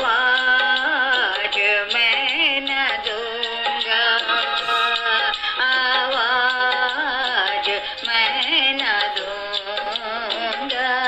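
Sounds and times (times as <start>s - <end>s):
instrumental backing music: 0.0s - 11.0s
voice singing held notes: 3.1s - 6.2s.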